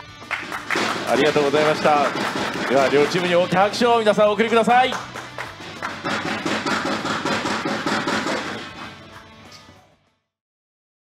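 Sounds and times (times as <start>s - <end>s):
people clapping: 0.0s - 9.6s
background music: 0.0s - 10.2s.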